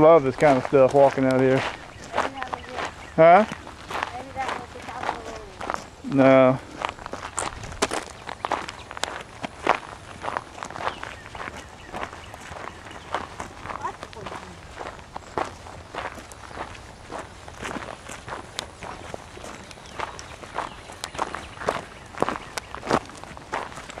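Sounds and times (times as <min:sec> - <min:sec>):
footsteps on rock and dry ground: 0:00.0 - 0:24.0.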